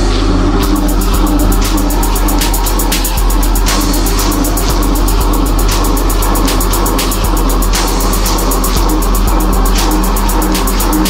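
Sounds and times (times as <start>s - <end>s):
electronic music: 0.0s - 11.0s.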